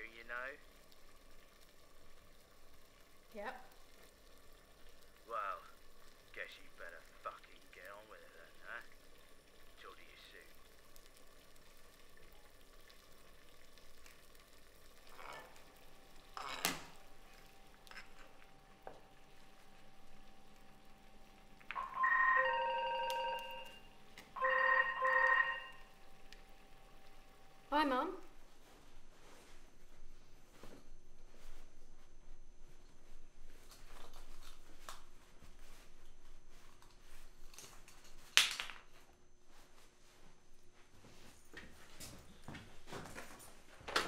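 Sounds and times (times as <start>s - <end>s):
electronic telephone ringing: 21.7s - 26.0s.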